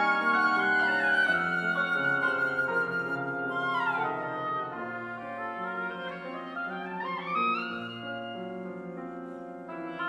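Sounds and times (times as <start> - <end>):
flute oboe and piano trio: 0.0 - 10.0.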